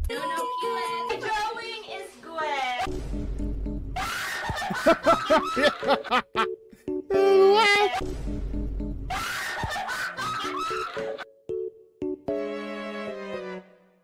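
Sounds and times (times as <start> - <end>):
light background music: 0.1 - 14.0
women laughing hard: 4.0 - 6.5, 9.1 - 11.2.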